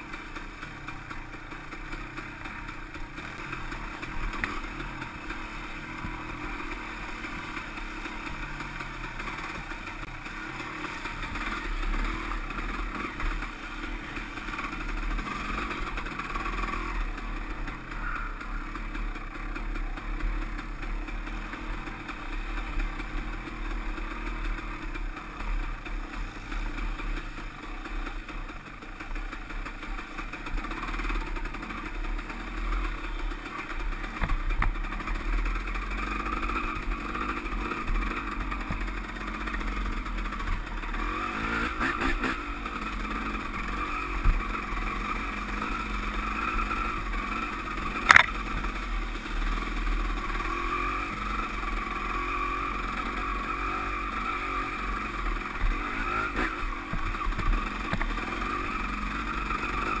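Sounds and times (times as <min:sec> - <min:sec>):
dirt bike engine revving: 0:00.0 - 1:00.0.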